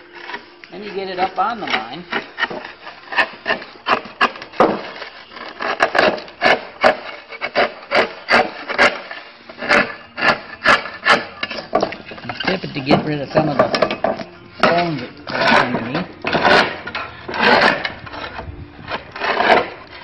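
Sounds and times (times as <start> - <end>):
slate cutter crunching slate: 0.0 - 20.0.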